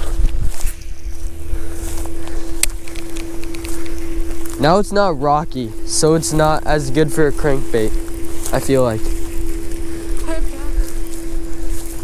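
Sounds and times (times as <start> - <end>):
faint hum: 0.0 - 12.0
wind buffeting microphone: 0.0 - 12.0.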